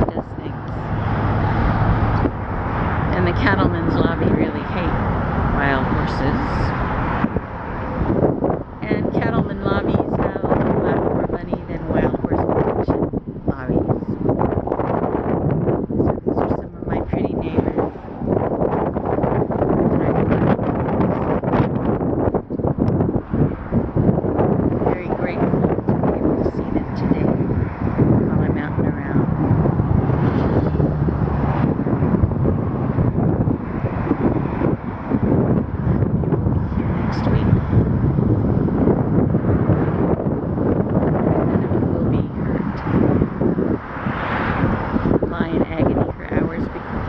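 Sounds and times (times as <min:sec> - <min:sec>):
gusty wind on microphone: 0:00.0 - 0:47.0.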